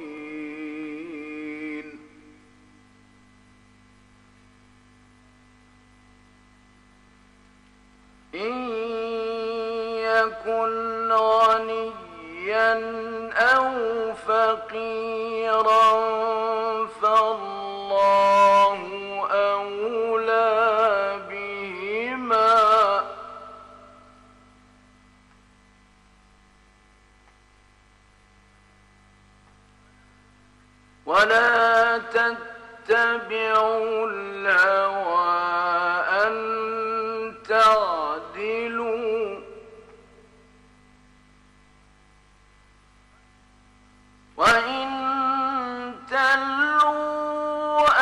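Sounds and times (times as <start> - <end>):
man reciting: 0.0 - 2.4, 8.3 - 24.0, 31.0 - 40.0, 44.4 - 48.0
faint electrical hum with hiss: 0.0 - 48.0.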